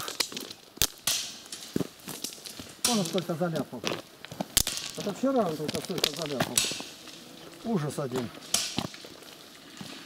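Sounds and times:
clicks of stone on stone: 0.0 - 9.1
footsteps crunching on gravel: 1.5 - 10.0.

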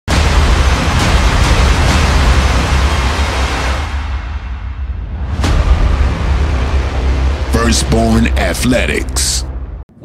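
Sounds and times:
loud rush of noise: 0.1 - 8.6.

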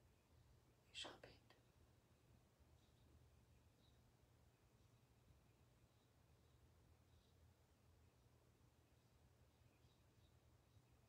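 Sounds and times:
faint whisper: 0.8 - 1.7.

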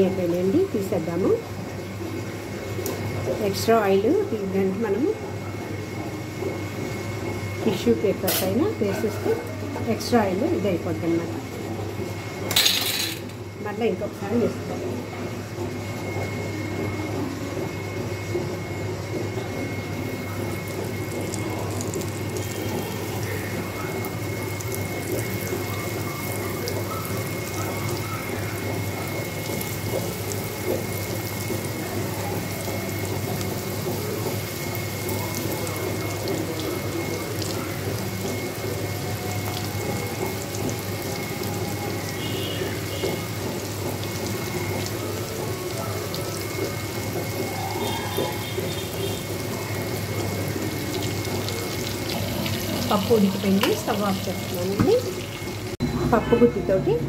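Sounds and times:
oil sizzling and crackling: 18.2 - 55.8.

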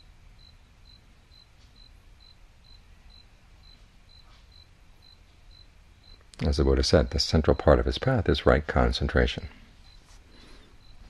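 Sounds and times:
cricket chirping: 0.0 - 8.2, 9.6 - 11.0.

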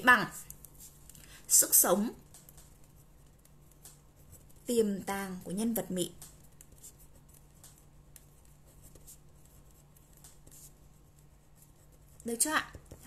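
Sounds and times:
pen scratching on paper: 2.3 - 13.0.

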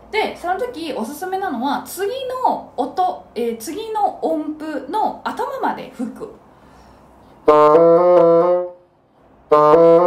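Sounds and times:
bassoon playing quick notes: 7.5 - 8.8, 9.5 - 10.0.

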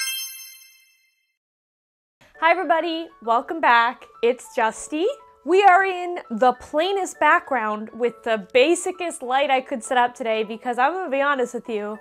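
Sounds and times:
sparkly chime ding: 0.0 - 1.2.

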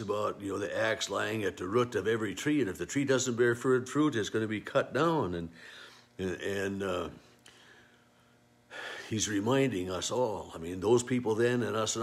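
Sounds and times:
man speaking: 0.0 - 5.6, 6.2 - 7.3, 9.1 - 12.0.

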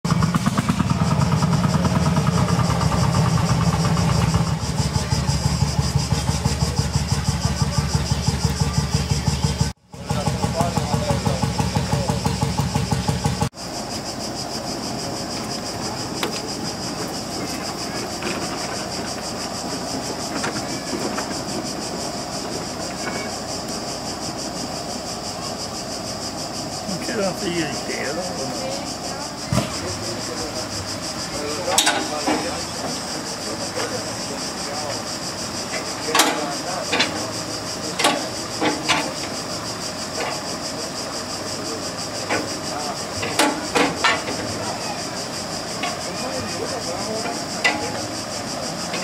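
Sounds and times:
outdoor background noise: 0.0 - 49.0
big engine running loud: 0.1 - 49.0.

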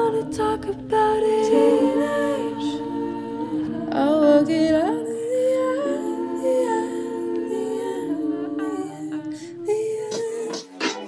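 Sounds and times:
hummed vocal melody: 0.0 - 11.0
sustained musical notes: 0.0 - 11.0.

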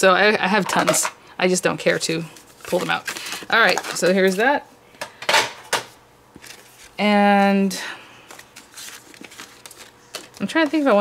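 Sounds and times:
paper rustle: 8.3 - 11.0.

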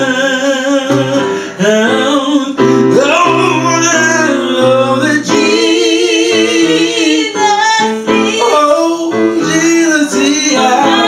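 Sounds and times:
gospel singing in harmony: 0.0 - 11.0.

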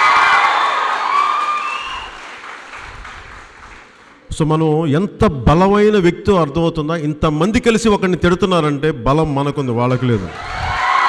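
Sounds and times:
audience cheering: 0.0 - 3.9, 9.9 - 11.0
audience applauding: 0.0 - 4.3.

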